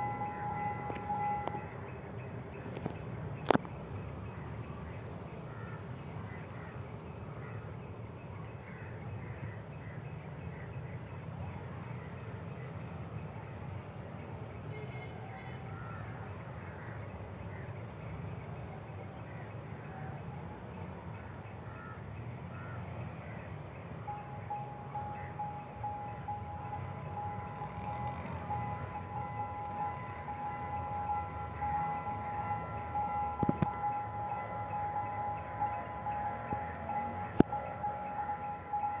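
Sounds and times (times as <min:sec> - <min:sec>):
level crossing warning tone: 0:00.0 - 0:02.8, 0:23.7 - 0:39.0
diesel rail car rumble: 0:00.0 - 0:39.0
road traffic: 0:00.0 - 0:39.0.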